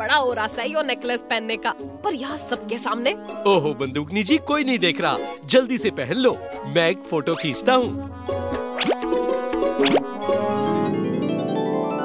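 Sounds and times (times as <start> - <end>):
playful cartoon music: 0.0 - 12.0
rising run of notes: 8.7 - 12.0.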